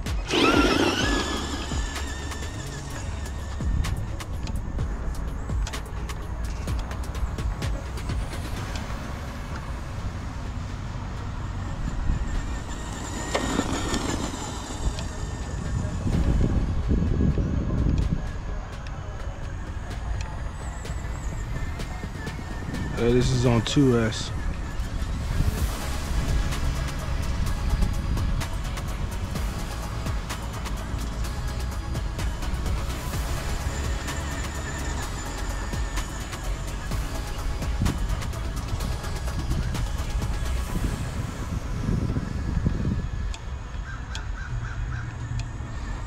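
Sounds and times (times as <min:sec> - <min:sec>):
electric motor whining: 0:00.0 - 0:05.2, 0:09.5 - 0:46.0
background music: 0:00.0 - 0:43.8.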